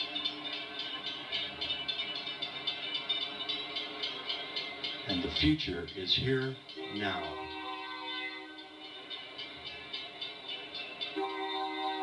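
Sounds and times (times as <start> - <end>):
railroad crossing bell dinging: 0.0 - 12.0.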